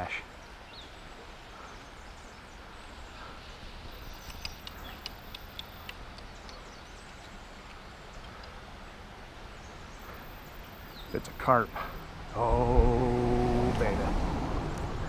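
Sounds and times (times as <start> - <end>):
faint sharp clicks: 3.9 - 8.7
wind rumble on microphone: 12.3 - 15.0.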